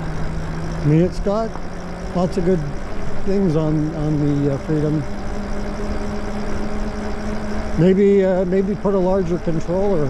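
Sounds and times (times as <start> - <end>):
electric motor hum: 0.0 - 10.0.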